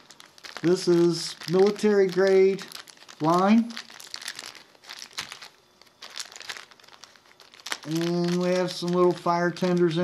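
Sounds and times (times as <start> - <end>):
plastic packet crinkling: 0.0 - 10.0.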